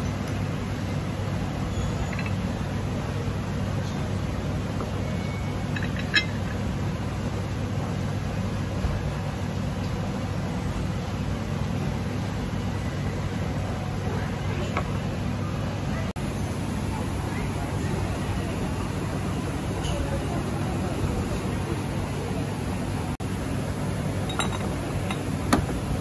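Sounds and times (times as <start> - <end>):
road traffic rumble: 0.0 - 26.0
ceramic dish clinking on table: 5.7 - 6.6, 24.3 - 25.3
faint background chatter: 12.6 - 23.2.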